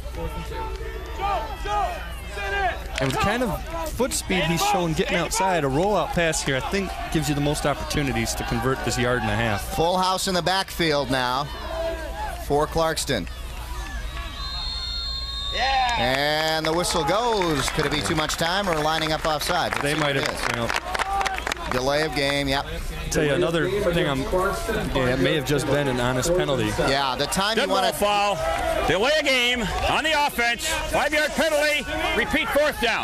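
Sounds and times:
people shouting: 0:00.1 - 0:10.1, 0:10.9 - 0:12.4, 0:25.0 - 0:33.0
referee's whistle long blast: 0:13.9 - 0:16.1.

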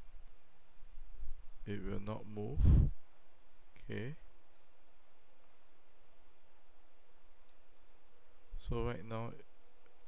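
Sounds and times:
computer mouse clicks: 0:00.0 - 0:00.9, 0:03.8 - 0:05.6, 0:07.4 - 0:08.0
low room hiss: 0:00.0 - 0:10.0.

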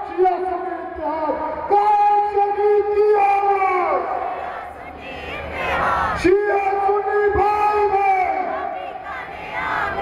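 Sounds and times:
crowd shouting a slogan: 0:03.4 - 0:10.0.

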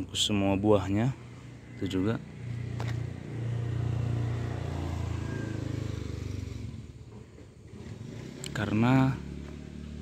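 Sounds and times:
vehicle engine passing by: 0:00.9 - 0:10.0.

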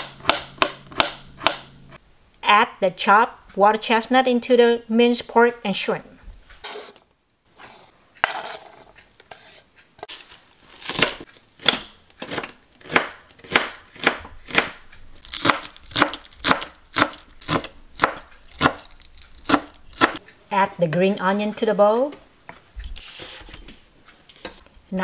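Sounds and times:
knife chopping on wooden board: 0:00.0 - 0:02.0, 0:10.9 - 0:14.8, 0:15.4 - 0:18.9, 0:19.5 - 0:20.2
knife scraping board: 0:06.6 - 0:09.7, 0:23.0 - 0:24.6.

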